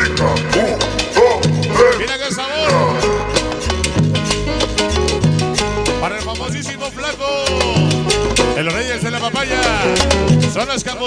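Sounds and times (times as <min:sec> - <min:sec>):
lead guitar bending notes: 0:00.0 - 0:11.0
salsa music: 0:00.0 - 0:11.0.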